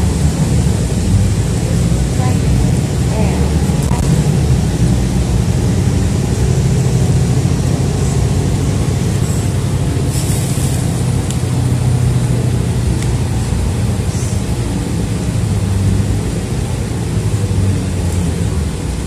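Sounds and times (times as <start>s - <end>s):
bus engine and road rumble: 0.0s - 19.0s.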